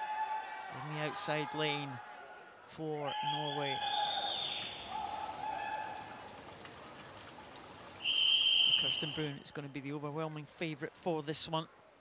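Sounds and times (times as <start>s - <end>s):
indoor swimming pool hubbub: 0.0s - 12.0s
long high-pitched calls: 3.2s - 5.6s, 8.0s - 9.3s.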